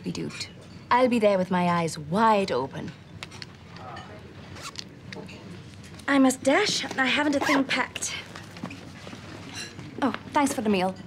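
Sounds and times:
zipper rasping: 0:04.5 - 0:04.9.

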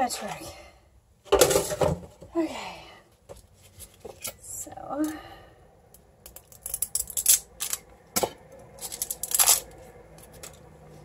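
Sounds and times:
packaging rustling and clicking: 0:08.8 - 0:10.6.

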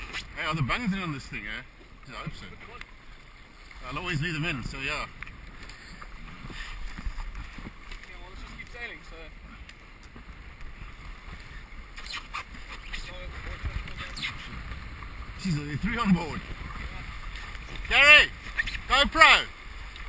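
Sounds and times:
water rushing along hulls: 0:00.0 - 0:20.0
wind rumbling on microphone: 0:01.9 - 0:20.0.

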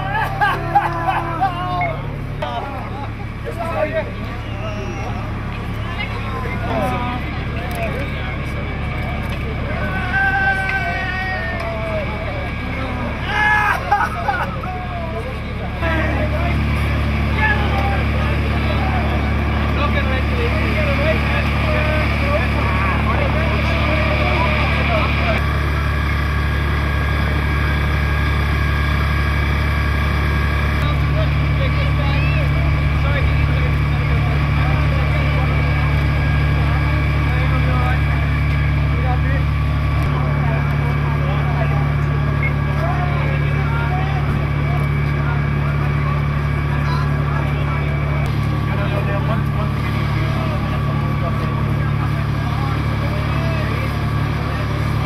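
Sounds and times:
people shouting: 0:00.0 - 0:02.1, 0:09.7 - 0:12.1, 0:13.1 - 0:14.1, 0:17.3 - 0:19.3
diesel engine humming: 0:00.0 - 0:55.0.

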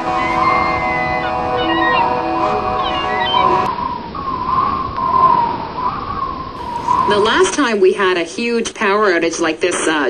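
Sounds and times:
high wavering whistling tone: 0:00.0 - 0:07.7.

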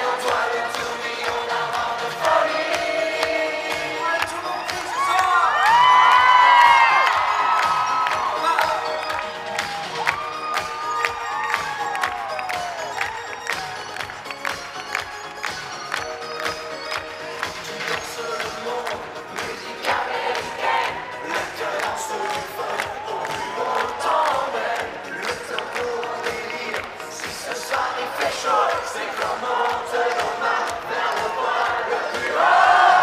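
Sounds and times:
live pop music over pa: 0:00.0 - 0:33.0
crowd cheering and whooping: 0:04.4 - 0:17.3, 0:20.0 - 0:25.4, 0:30.9 - 0:33.0.

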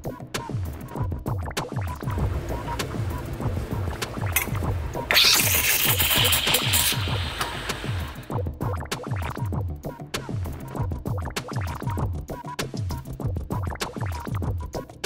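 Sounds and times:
electronic beat music: 0:02.1 - 0:08.3
espresso machine steam wand hiss: 0:02.2 - 0:08.3.

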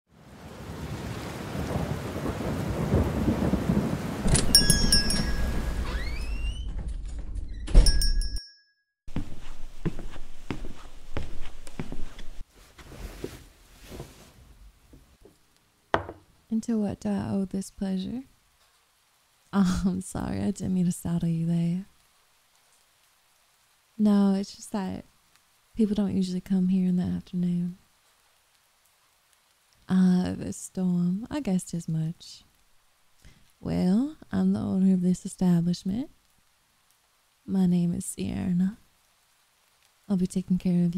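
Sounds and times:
rain: 0:00.1 - 0:06.8, 0:11.2 - 0:40.9
rolling thunder: 0:00.4 - 0:05.8
door creaking: 0:04.2 - 0:08.1
shop door bell jingling: 0:04.3 - 0:05.9, 0:07.8 - 0:08.7
door thump: 0:16.0 - 0:16.2.

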